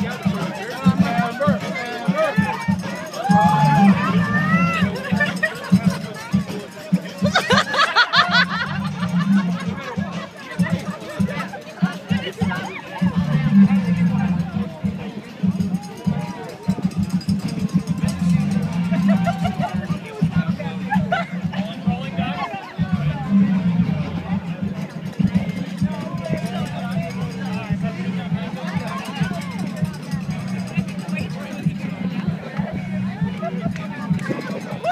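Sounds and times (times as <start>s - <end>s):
people talking and calling out: 0.0s - 34.9s.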